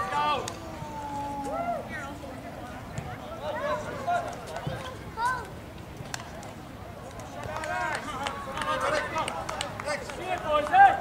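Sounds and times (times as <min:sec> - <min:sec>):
people shouting and calling out: 0:00.0 - 0:02.2, 0:03.1 - 0:05.5, 0:07.4 - 0:11.0.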